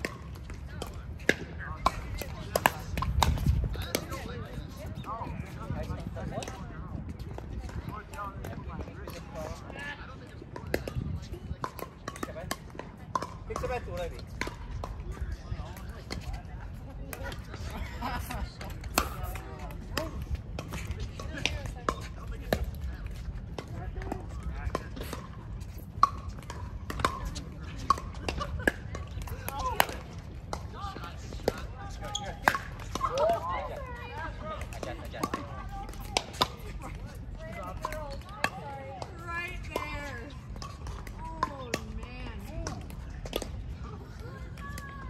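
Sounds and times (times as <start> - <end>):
voices: 0.0 - 45.0.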